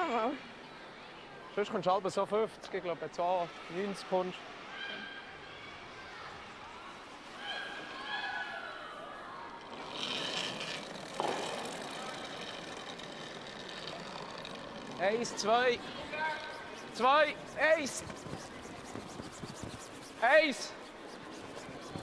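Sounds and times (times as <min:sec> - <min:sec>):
ice rink background noise: 0:00.0 - 0:22.0
faint voices: 0:04.5 - 0:22.0.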